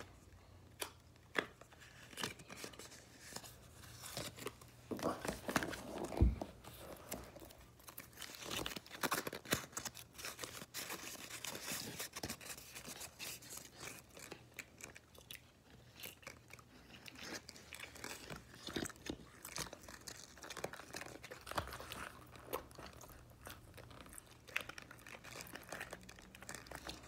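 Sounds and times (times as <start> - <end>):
person chewing and crunching food: 0.0 - 27.0.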